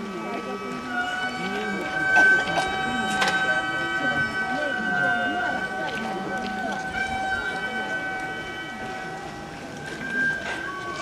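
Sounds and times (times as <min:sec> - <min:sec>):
lower wavering tone: 0:00.0 - 0:11.0
mouth organ sustained chord: 0:00.0 - 0:11.0.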